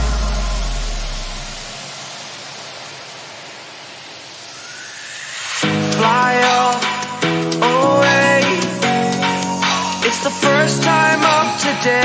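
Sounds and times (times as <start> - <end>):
deep bass: 0.0 - 1.7
white-noise sweep: 0.0 - 12.0.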